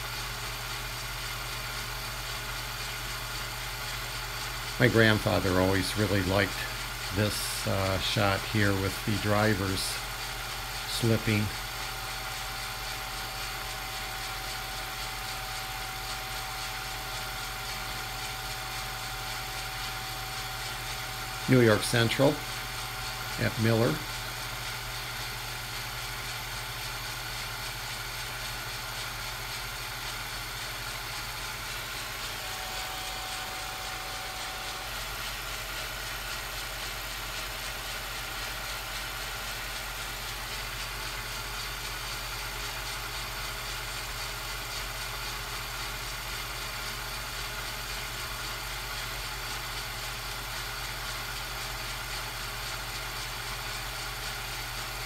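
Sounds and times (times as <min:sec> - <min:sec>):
low electrical hum: 0:00.0 - 0:55.0.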